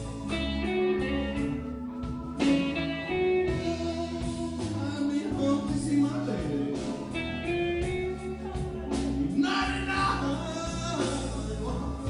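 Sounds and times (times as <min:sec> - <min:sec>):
bass: 0:00.0 - 0:12.0
drums: 0:00.0 - 0:12.0
electric guitar lead: 0:00.0 - 0:12.0
keyboard: 0:00.0 - 0:12.0.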